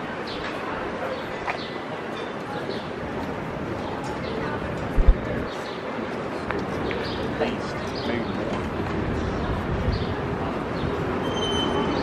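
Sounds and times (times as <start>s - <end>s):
people on sidewalk: 0.0s - 12.0s
traffic hum: 0.0s - 12.0s
high-pitched calls: 11.2s - 12.0s.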